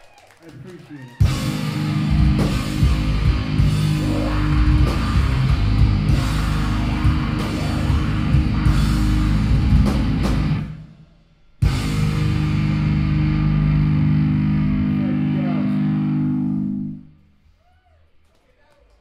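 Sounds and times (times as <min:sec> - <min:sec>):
metal band playing live: 0:01.2 - 0:10.9, 0:11.6 - 0:16.8.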